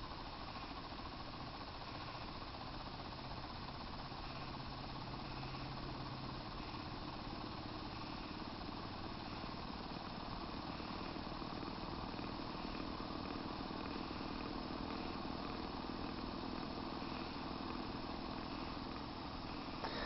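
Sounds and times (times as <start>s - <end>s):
motor humming and hissing: 0.0s - 20.0s.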